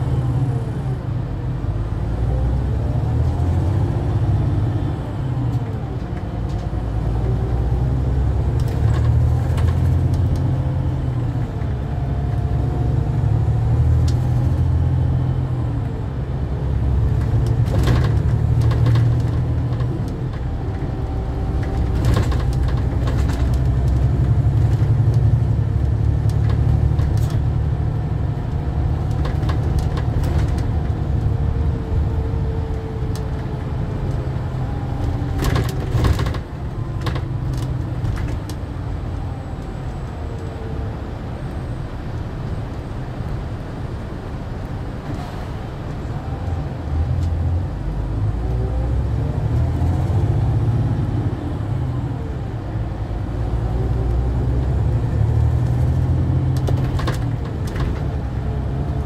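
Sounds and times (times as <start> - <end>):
coach engine and road drone: 0.0 - 59.0.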